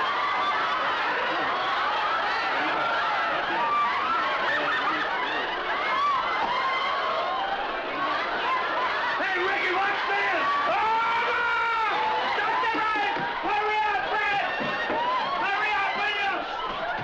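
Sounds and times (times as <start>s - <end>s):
studio audience laughing: 0.3s - 10.5s.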